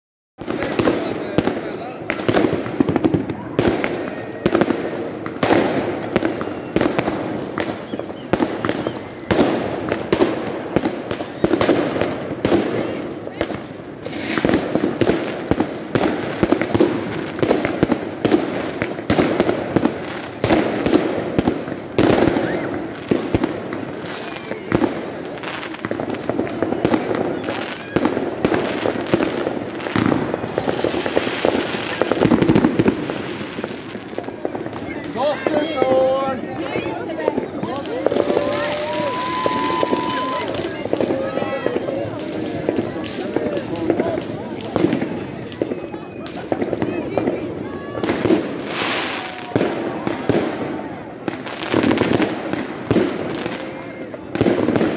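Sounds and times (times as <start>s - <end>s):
fireworks bangs and crackles: 0.4s - 54.9s
sharp firework reports: 0.4s - 54.9s.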